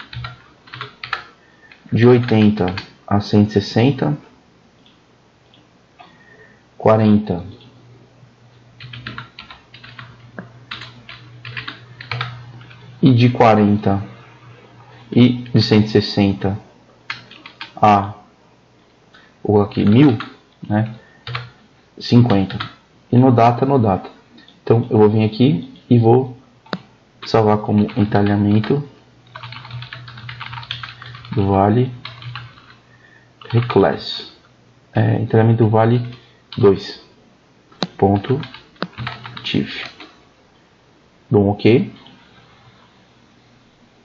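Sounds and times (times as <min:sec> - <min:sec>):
computer keyboard typing: 0:00.0 - 0:02.9, 0:08.8 - 0:13.1, 0:17.1 - 0:17.8, 0:19.6 - 0:21.6, 0:22.2 - 0:22.8, 0:26.6 - 0:32.8, 0:33.4 - 0:33.8, 0:37.8 - 0:40.2
steady low hum: 0:00.0 - 0:44.0.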